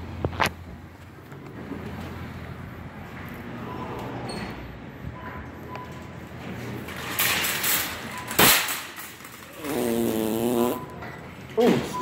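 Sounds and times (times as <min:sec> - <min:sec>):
buzzy fart: 0:09.5 - 0:10.9.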